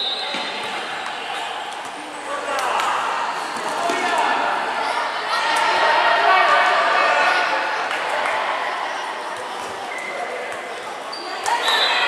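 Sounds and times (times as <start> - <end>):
echoing chatter and shouting: 0.0 - 12.0.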